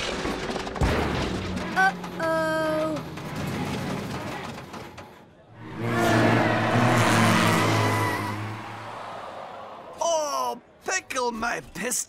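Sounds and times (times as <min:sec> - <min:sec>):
cartoon engine noise: 0:05.5 - 0:09.0.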